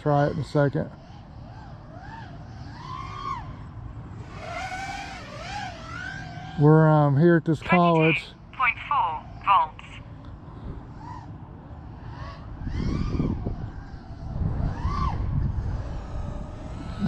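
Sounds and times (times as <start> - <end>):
faint quadcopter motor whine: 0.0 - 17.0
low wind rumble on microphone: 9.5 - 17.0.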